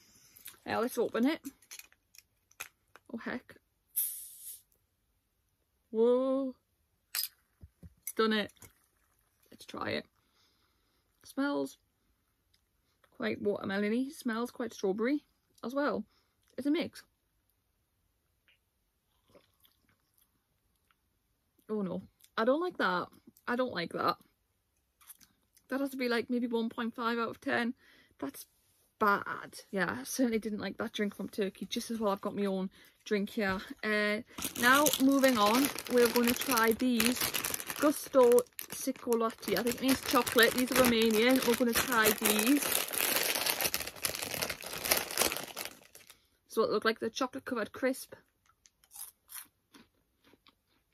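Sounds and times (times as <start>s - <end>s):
foil crisp packet crinkling: 0.5s - 3.1s, 34.3s - 46.2s
person sipping and swallowing: 19.1s - 20.3s.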